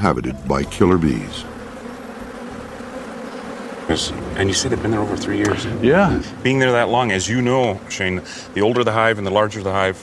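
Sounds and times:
honeybee colony buzzing: 0.0 - 10.0.

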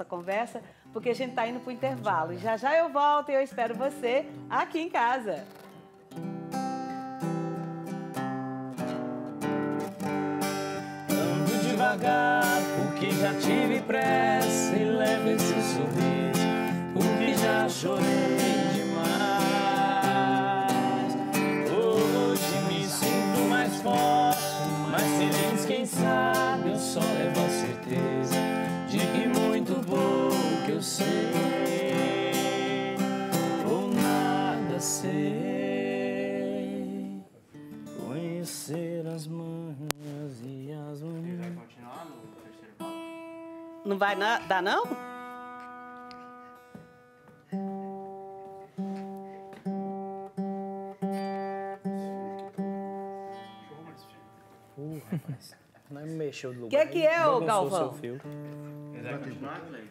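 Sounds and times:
acoustic guitar strumming: 0.7 - 3.0, 3.6 - 54.8, 56.8 - 59.9
two men singing: 11.1 - 37.3, 38.0 - 41.5.

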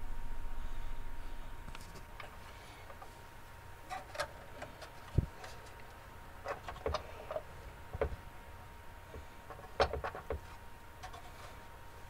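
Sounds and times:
wooden parts and tools knocking: 6.4 - 8.2, 9.1 - 11.4.

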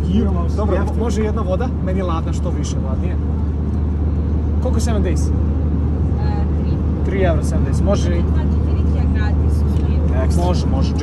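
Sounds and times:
airliner cabin engine drone: 0.0 - 11.0.

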